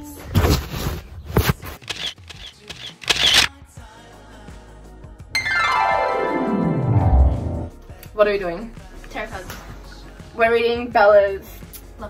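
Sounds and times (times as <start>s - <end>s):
camera handling clicks and rustles: 1.8s - 3.5s.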